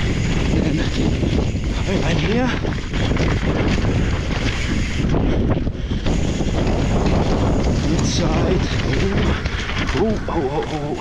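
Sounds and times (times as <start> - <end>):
bike rattling and knocking: 0.0 - 11.0
bike tyres rolling on dirt: 0.0 - 11.0
wind on microphone: 0.0 - 11.0.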